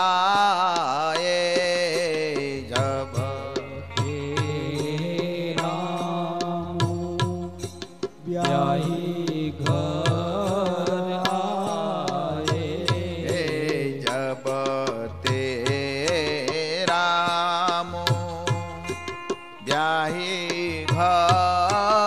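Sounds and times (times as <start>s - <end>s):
person singing devotional song: 0.0s - 22.0s
sustained accompanying tones: 3.2s - 13.9s.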